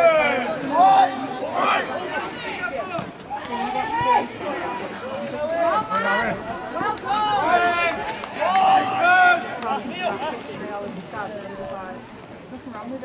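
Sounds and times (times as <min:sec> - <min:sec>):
players shouting: 0:00.0 - 0:10.6.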